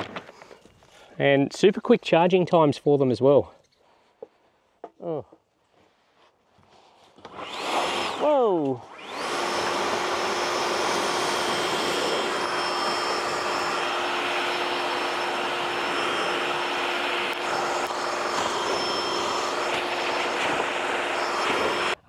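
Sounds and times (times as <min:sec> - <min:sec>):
sticks and leaves on metal roof: 0:00.0 - 0:01.1
leaf blower running: 0:07.2 - 0:22.0.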